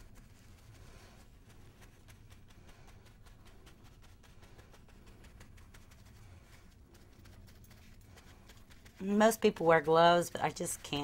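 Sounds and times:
low room hum: 0:00.0 - 0:11.0
paper towel patting a lamp base: 0:00.0 - 0:11.0.

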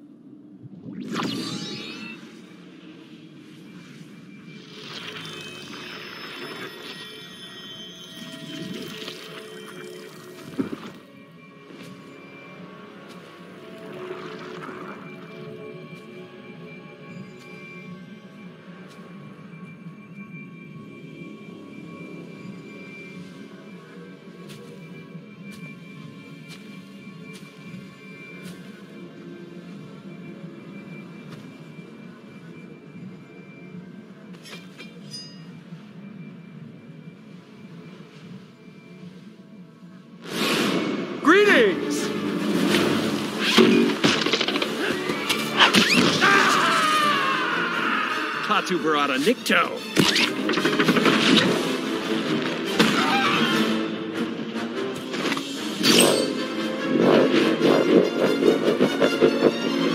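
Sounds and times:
film score with held tones: 0:00.0 - 0:59.9
swirling sci-fi sound effects: 0:00.5 - 0:11.0.

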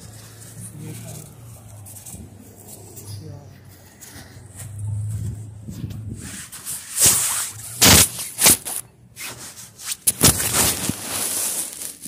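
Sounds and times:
soft rustling: 0:00.0 - 0:12.0.

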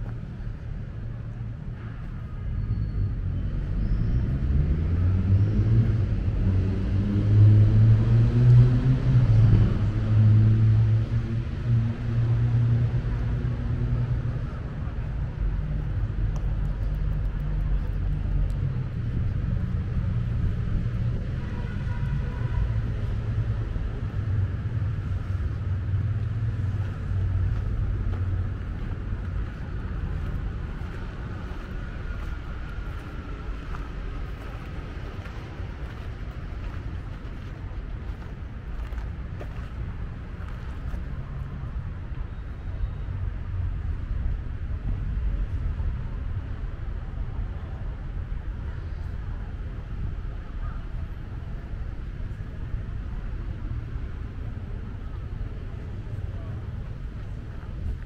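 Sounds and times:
low traffic rumble: 0:00.0 - 0:58.0
vehicle engine accelerating: 0:03.5 - 0:14.4.

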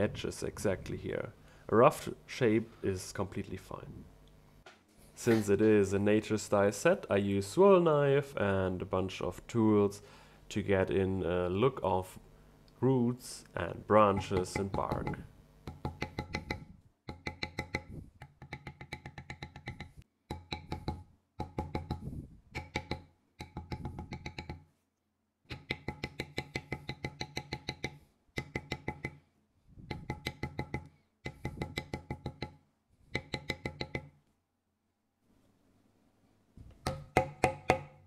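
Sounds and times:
mallet tapping metal tool: 0:14.0 - 0:24.7, 0:25.5 - 0:29.2, 0:29.9 - 0:34.2, 0:36.8 - 0:38.0.

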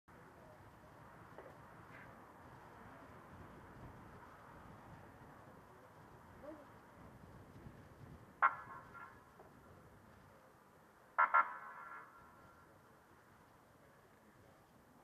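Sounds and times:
faint background noise: 0:00.1 - 0:15.0
distant police car warning blasts: 0:08.0 - 0:13.8.

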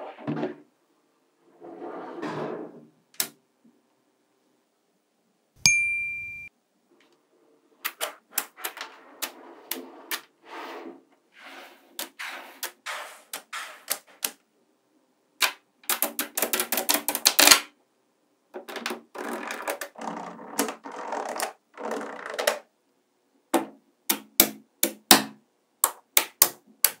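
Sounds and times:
magnetic balls clicking together: 0:15.4 - 0:17.6.

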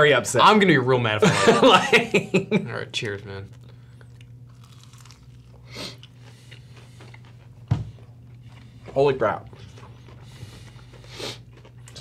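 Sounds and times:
people chewing crunchy food: 0:03.0 - 0:12.0.

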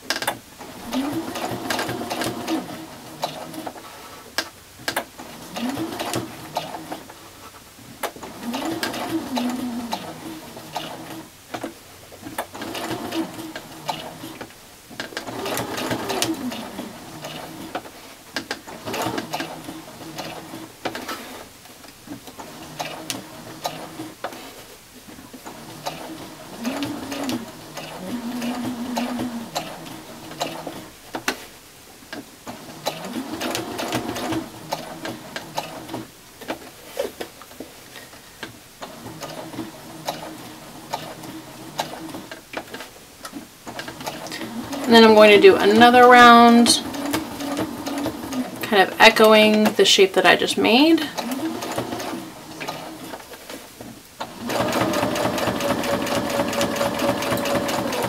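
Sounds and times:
sewing machine clicking: 0:00.0 - 0:03.8, 0:04.4 - 0:07.2, 0:08.0 - 0:21.4, 0:22.2 - 0:24.5, 0:25.4 - 0:31.4, 0:32.1 - 0:36.6, 0:38.4 - 0:49.7, 0:51.0 - 0:53.6, 0:54.2 - 0:58.0
sewing machine stitching: 0:00.0 - 0:07.2, 0:08.0 - 0:21.5, 0:22.1 - 0:24.6, 0:25.3 - 0:31.4, 0:32.1 - 0:37.2, 0:38.8 - 0:42.9, 0:43.6 - 0:49.7, 0:50.7 - 0:53.6, 0:54.2 - 0:58.0.

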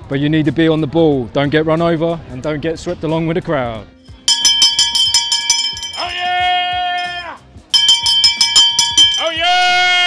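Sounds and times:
handbell rung rapidly: 0:04.3 - 0:06.4, 0:07.0 - 0:09.5.

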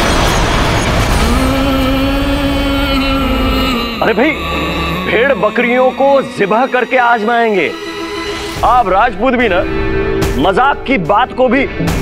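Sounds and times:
deep rumble: 0:00.0 - 0:07.0
dramatic background score: 0:00.0 - 0:12.0.

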